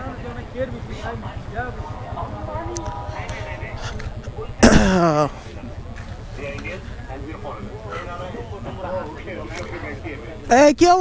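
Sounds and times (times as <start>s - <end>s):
low steady rumble: 0.0s - 10.2s
distant people talking: 0.0s - 10.7s.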